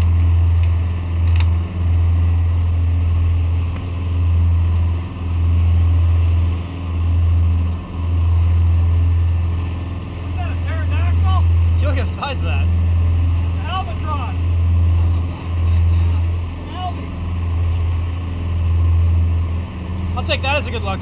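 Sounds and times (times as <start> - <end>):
boat engine drone: 0.0 - 21.0.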